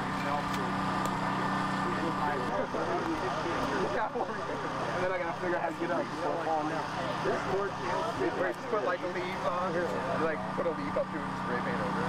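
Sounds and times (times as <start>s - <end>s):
background talk: 0.0s - 12.0s.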